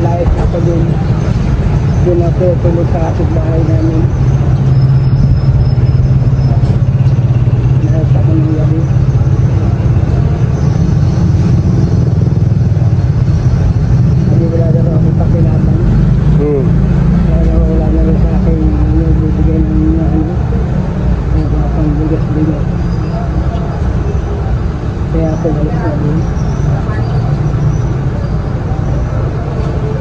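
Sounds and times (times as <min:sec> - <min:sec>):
indistinct voices: 0:00.0 - 0:30.0
vehicle engine rumbling: 0:00.0 - 0:30.0.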